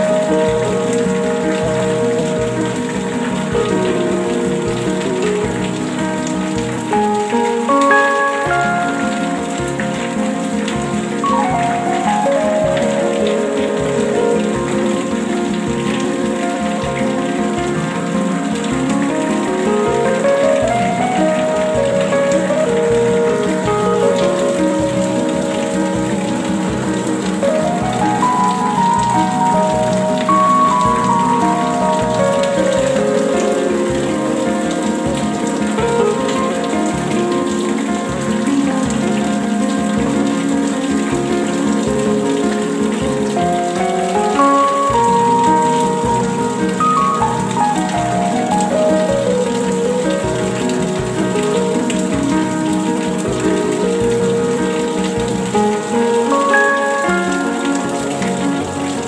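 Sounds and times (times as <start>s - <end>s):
slow ambient music: 0.0s - 59.0s
steady rain: 0.0s - 59.0s.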